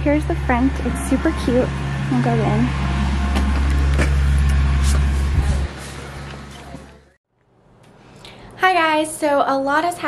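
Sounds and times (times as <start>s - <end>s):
low rumble: 0.0s - 6.9s.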